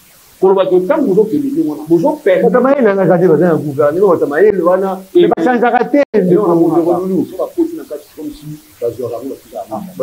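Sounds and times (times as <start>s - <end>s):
men talking: 0.4s - 10.0s.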